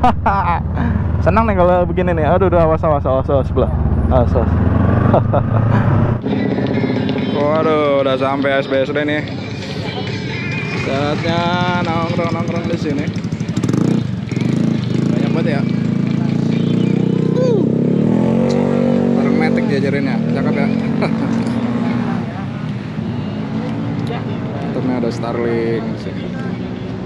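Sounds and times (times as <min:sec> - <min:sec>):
motorcycle engine running: 0:00.3 - 0:27.0.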